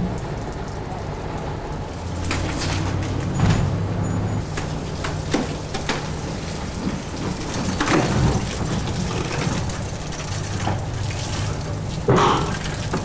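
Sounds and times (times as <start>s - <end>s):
heavy trailer rolling: 0.0s - 11.9s
wood cracking and creaking: 4.6s - 10.9s.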